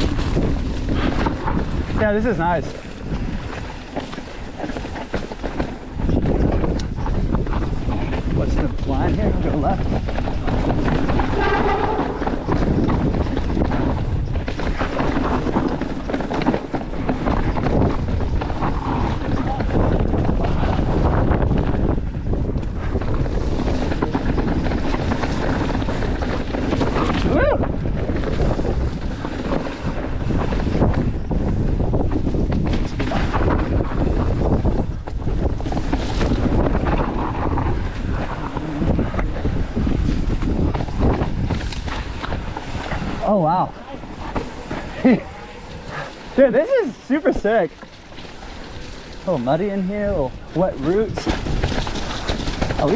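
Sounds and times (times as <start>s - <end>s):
bike knocks and rattles: 0.0s - 52.9s
bike tyres on dirt and rock: 0.0s - 52.9s
wind noise on microphone: 0.0s - 52.9s.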